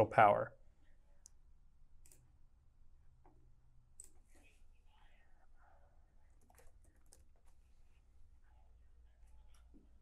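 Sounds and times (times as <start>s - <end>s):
faint keyboard typing: 2.0s - 2.4s, 3.2s - 8.0s, 9.1s - 10.0s.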